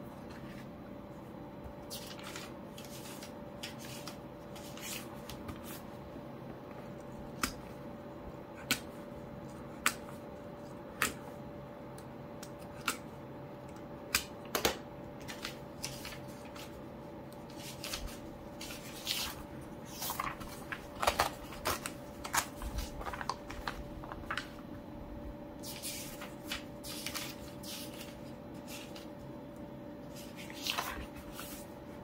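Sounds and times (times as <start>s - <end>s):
pages rustling: 1.8s - 6.0s, 15.2s - 16.8s, 17.4s - 24.7s, 25.6s - 29.3s, 30.1s - 31.8s.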